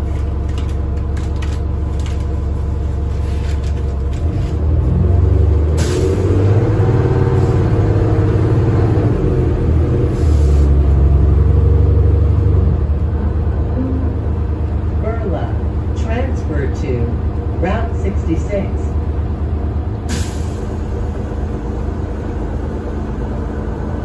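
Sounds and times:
bus diesel engine droning: 0.0s - 24.0s
voices: 15.0s - 19.0s.

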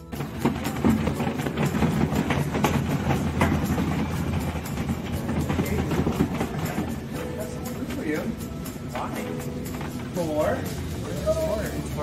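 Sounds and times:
wheeled cart rattling: 0.0s - 12.0s.

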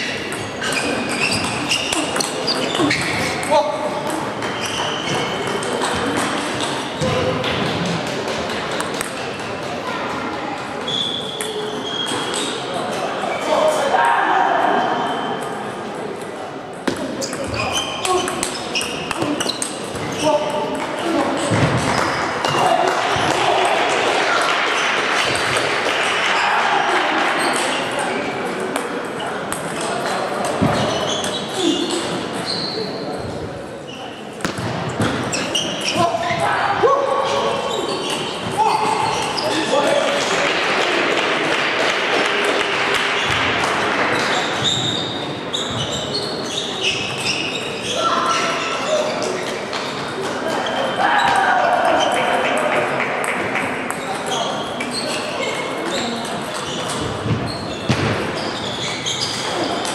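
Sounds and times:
voices in a hall: 0.0s - 59.9s.

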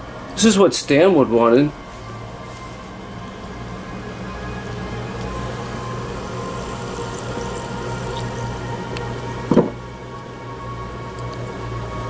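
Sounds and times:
background music: 0.0s - 12.0s
electrolysis cell hum and bubbling: 0.0s - 12.0s
brief knock: 9.5s - 9.8s.

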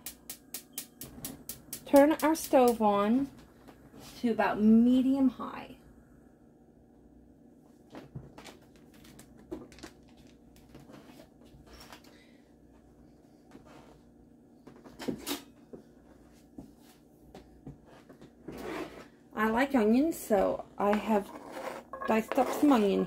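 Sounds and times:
low steady hum: 0.0s - 23.0s
kitchen items knocking and clattering: 20.9s - 23.0s.

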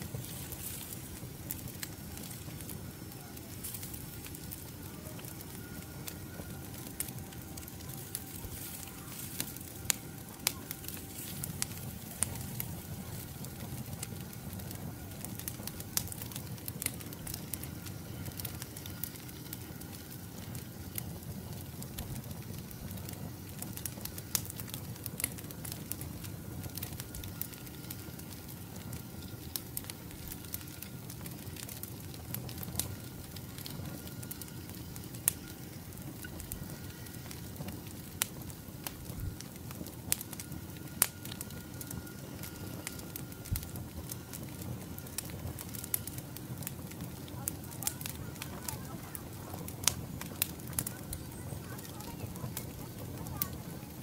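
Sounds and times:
log fire burning: 0.0s - 54.0s
pops and crackles from logs: 0.0s - 54.0s.

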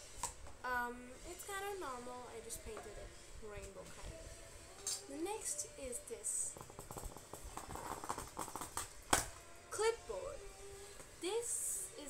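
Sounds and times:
scratchy rubbing: 6.6s - 8.9s.

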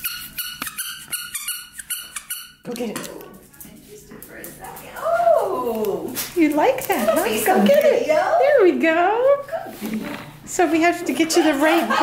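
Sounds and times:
squeaky toy squeaks: 0.0s - 2.7s.

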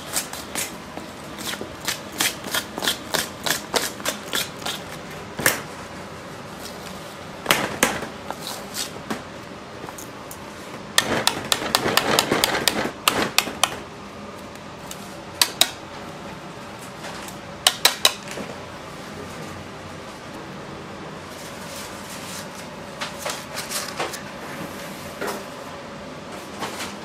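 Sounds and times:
kitchen hum: 0.0s - 27.0s.

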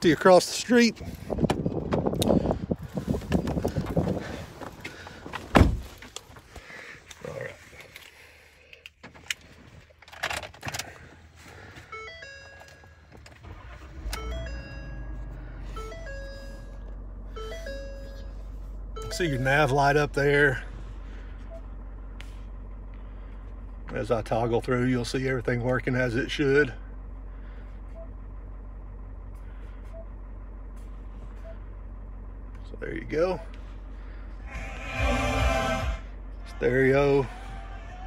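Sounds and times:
truck door opening: 5.3s - 6.2s
engine starting and idling: 7.8s - 38.0s
electronic tones changing pitch: 34.4s - 36.8s.

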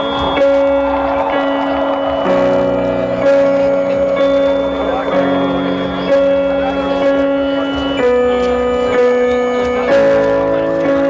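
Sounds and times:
electric guitars sustained notes: 0.0s - 11.0s
live post-rock band playing: 0.0s - 11.0s.

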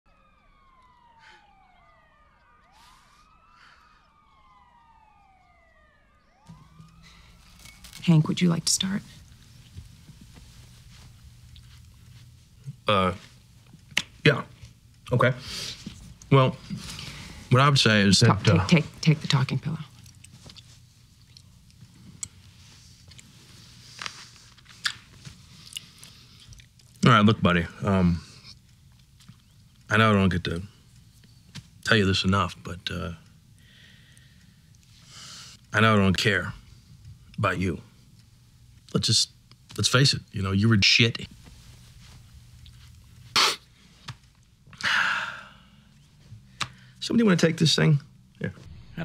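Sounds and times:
police sirens wailing: 0.0s - 11.1s
low room hum: 0.1s - 49.0s
soft fabric rustle: 7.2s - 12.6s, 18.9s - 25.6s, 41.3s - 44.5s.

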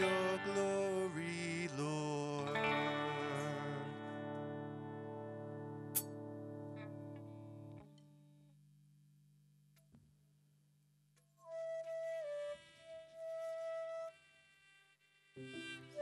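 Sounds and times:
electric guitar ringing: 0.0s - 7.8s.

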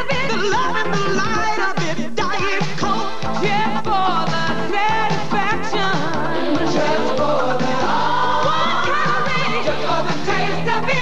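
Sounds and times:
group of voices singing: 2.8s - 11.0s
band playing: 4.0s - 10.5s.

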